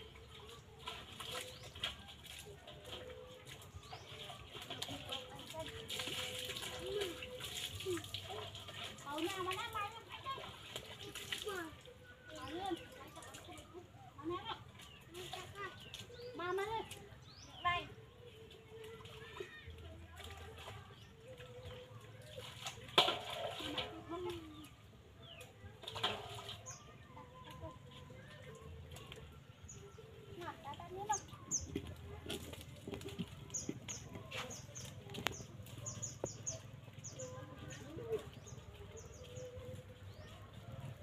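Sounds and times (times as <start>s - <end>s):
young children calling and chattering: 0.0s - 41.0s.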